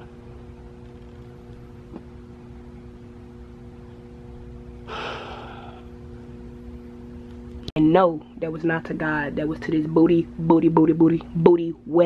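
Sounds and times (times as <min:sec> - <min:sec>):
faint hum: 0:00.0 - 0:12.0
person exhaling breathily: 0:04.9 - 0:05.9.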